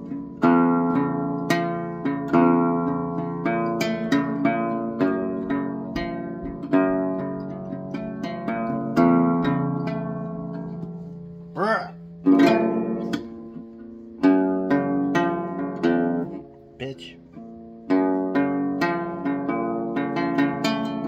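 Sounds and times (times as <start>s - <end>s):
acoustic guitar fingerpicking: 0.0s - 21.0s.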